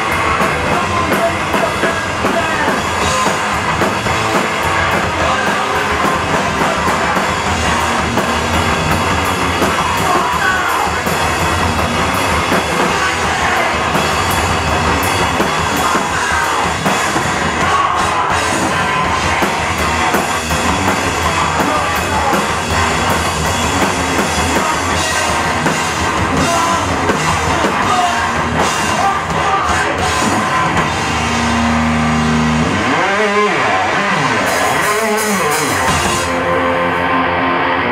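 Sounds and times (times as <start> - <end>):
live rock band playing: 0.0 - 37.9.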